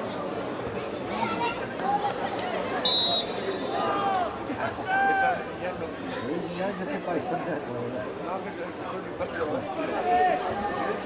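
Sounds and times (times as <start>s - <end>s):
crowd chatter: 0.0s - 11.0s
referee's whistle blast: 2.8s - 3.8s.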